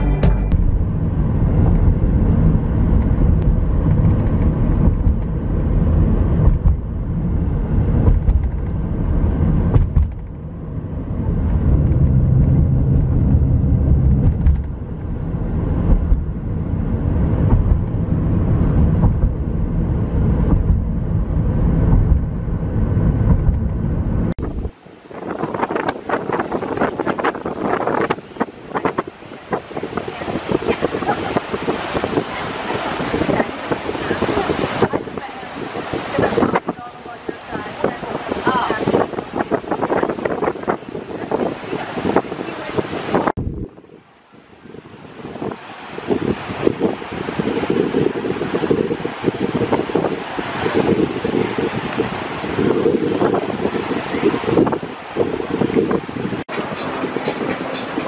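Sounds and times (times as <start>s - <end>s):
car road rumble from inside: 0.0s - 24.9s
wind buffeting microphone: 0.0s - 58.0s
surf breaking on beach: 24.4s - 58.0s.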